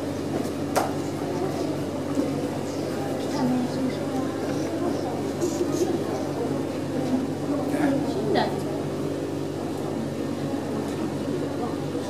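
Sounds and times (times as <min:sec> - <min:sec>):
aquarium machinery hum: 0:00.0 - 0:12.0.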